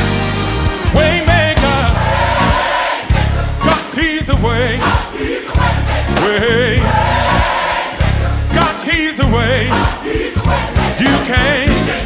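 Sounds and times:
band playing: 0:00.0 - 0:12.0
heavy bass line: 0:00.0 - 0:12.0
choir singing: 0:00.8 - 0:12.0.

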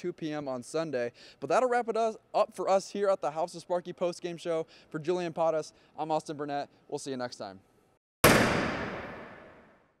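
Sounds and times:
impact hit sound effect: 0:08.2 - 0:09.7.

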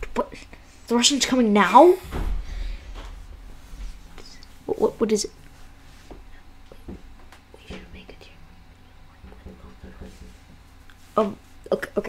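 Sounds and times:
low steady hum: 0:00.0 - 0:12.0
faint whispered speech: 0:07.6 - 0:09.8.

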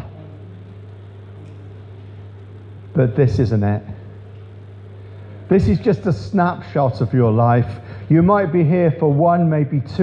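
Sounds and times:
low hum: 0:00.0 - 0:09.2.

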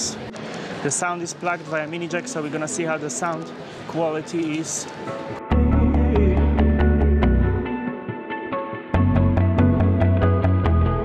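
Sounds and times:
heavy bass line: 0:05.5 - 0:07.8, 0:09.0 - 0:11.0.

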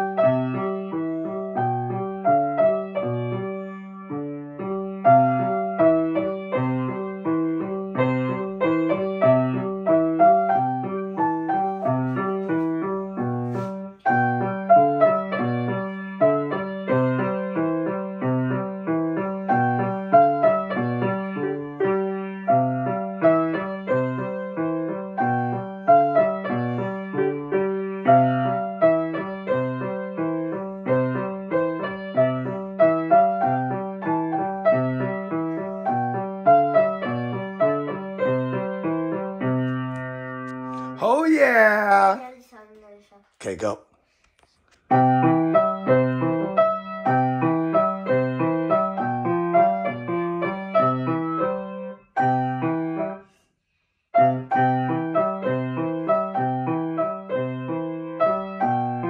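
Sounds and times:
grand piano piece: 0:00.0 - 0:42.3, 0:44.9 - 0:53.2, 0:54.2 - 0:59.0.

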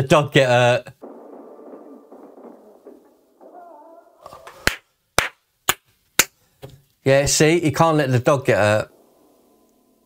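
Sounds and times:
muffled movie sound: 0:01.0 - 0:05.3
sharp gunshots: 0:01.0 - 0:05.3.

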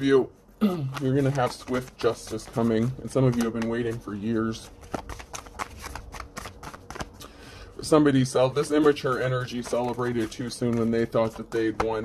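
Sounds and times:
cards being shuffled: 0:00.8 - 0:07.2, 0:08.6 - 0:12.0.

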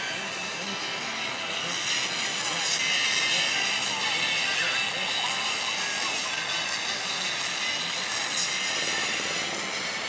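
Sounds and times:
jet ski engines whining: 0:00.0 - 0:10.0.

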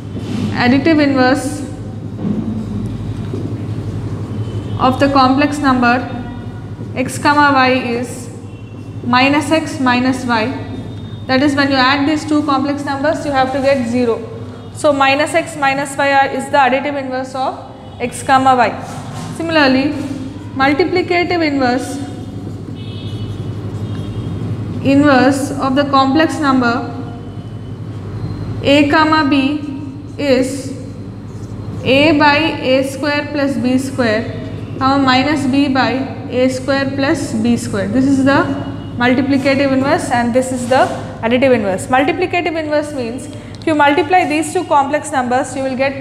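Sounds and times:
low background hum: 0:00.0 - 0:46.0
marker squeaking on whiteboard: 0:21.7 - 0:24.3.

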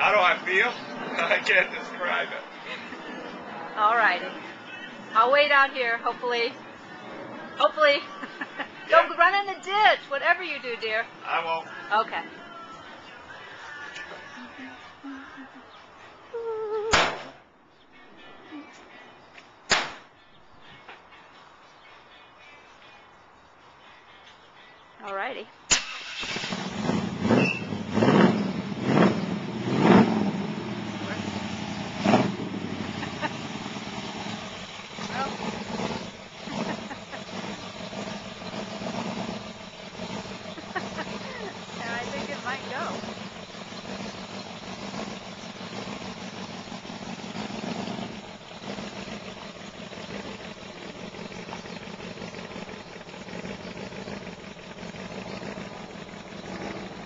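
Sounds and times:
pickup truck engine starting and revving: 0:25.7 - 0:57.0.

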